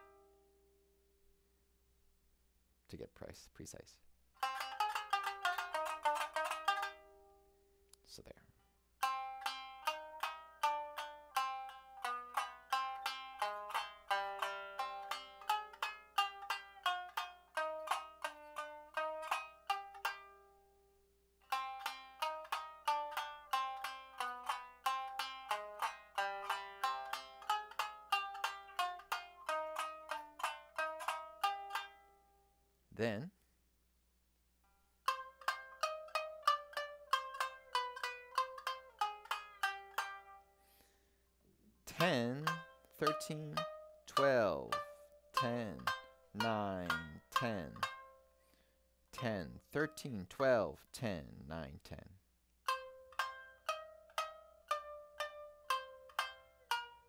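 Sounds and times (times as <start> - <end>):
shamisen sharply struck notes: 4.4 - 7.4, 9.0 - 20.5, 21.4 - 32.2, 41.9 - 48.3.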